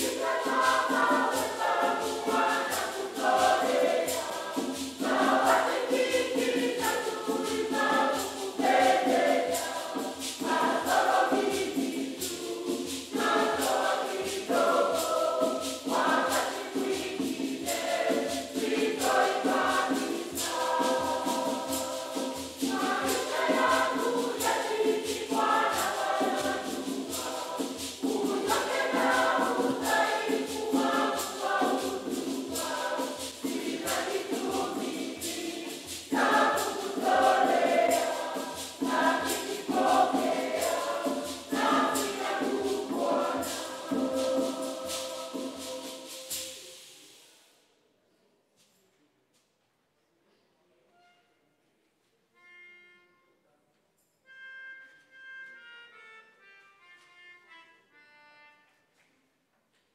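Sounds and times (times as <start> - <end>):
choir singing a hymn: 0.0 - 47.4
steady percussion beat: 0.0 - 47.4.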